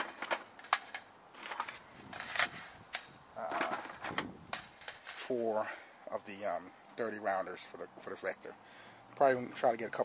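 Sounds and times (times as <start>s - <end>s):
magazines clacking in plastic bin: 0.0s - 5.3s
rustling: 0.0s - 5.4s.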